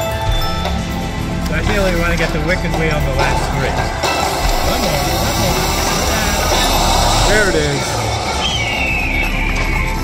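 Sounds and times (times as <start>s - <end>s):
slot machine music and effects: 0.0s - 10.0s.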